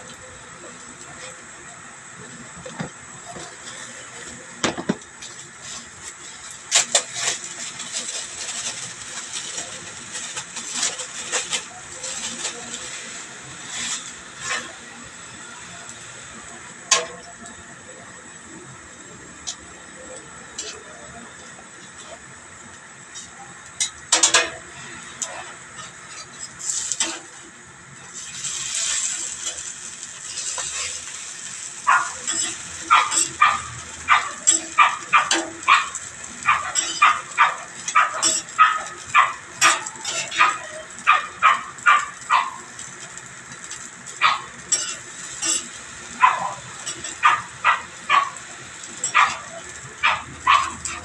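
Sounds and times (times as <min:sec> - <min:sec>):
dog barking: 0:31.9 - 0:32.3, 0:32.9 - 0:39.5, 0:40.4 - 0:42.7, 0:44.2 - 0:44.5, 0:46.2 - 0:46.6, 0:47.2 - 0:48.4, 0:49.1 - 0:51.0.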